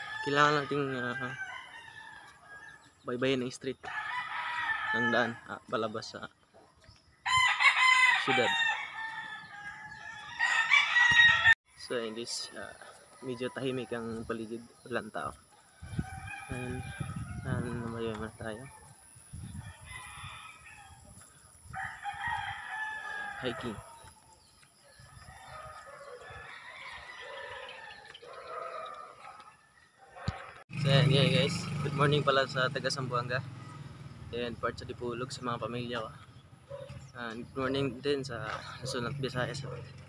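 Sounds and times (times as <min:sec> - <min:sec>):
rooster crowing: 0:00.0 - 0:03.0, 0:03.8 - 0:05.5, 0:07.2 - 0:11.6, 0:15.6 - 0:30.6.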